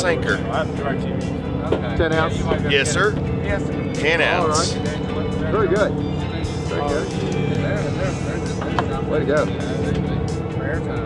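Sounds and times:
boat engine droning: 0.0s - 11.0s
voices: 0.0s - 11.0s.

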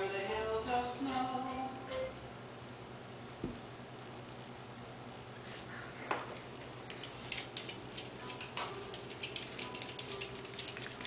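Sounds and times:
dog claws clicking on wooden floor: 6.8s - 11.0s.

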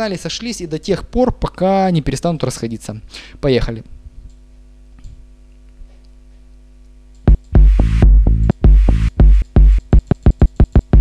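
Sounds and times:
electronic dance music: 7.3s - 11.0s.

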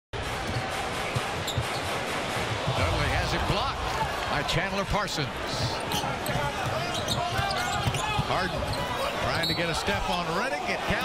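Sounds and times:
murmur of arena crowd: 0.2s - 11.0s.

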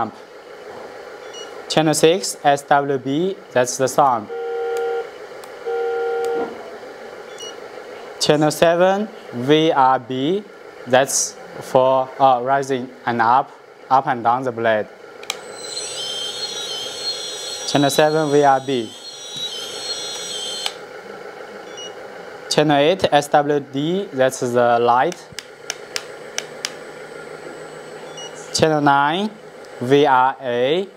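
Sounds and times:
buzzy multi-note electronic tone: 5.6s - 6.5s, 15.4s - 20.7s
high-pitched hydraulic pump whine: 15.3s - 20.9s, 26.8s - 30.9s.

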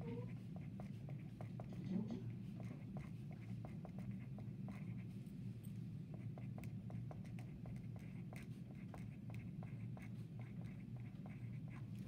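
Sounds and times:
pen scratching on paper: 0.0s - 5.2s, 6.1s - 12.0s.

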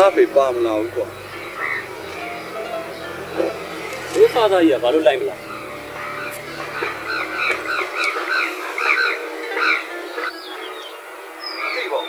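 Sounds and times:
frogs croaking: 0.0s - 12.0s
low hum: 0.3s - 8.3s.

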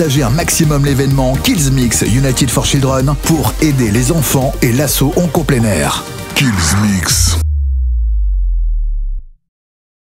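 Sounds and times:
deep sub-bass synth tone: 6.5s - 9.4s.

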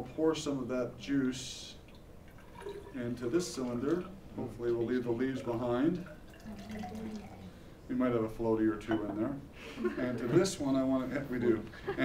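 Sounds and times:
liquid pouring and trickling: 1.8s - 7.6s.

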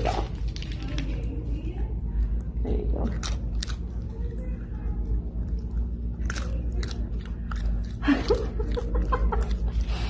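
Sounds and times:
animal chewing food: 0.0s - 10.0s.

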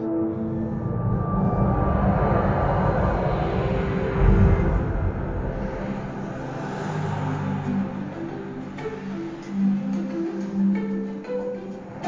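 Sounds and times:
faint ambient music: 0.0s - 12.0s
rushing rumble: 0.0s - 12.0s.

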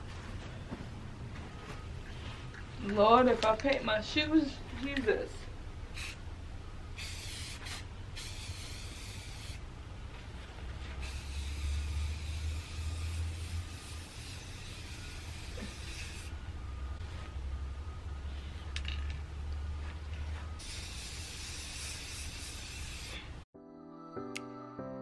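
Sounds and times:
spray paint can hissing: 5.9s - 6.2s, 7.0s - 9.6s, 11.0s - 16.3s, 20.6s - 23.3s.

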